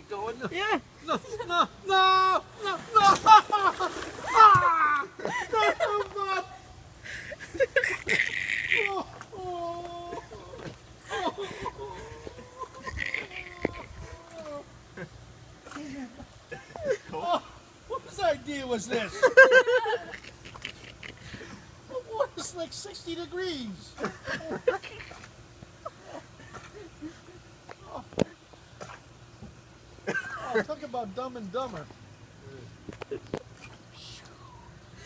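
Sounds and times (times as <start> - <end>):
person moaning and whimpering: 8.7 - 14.7.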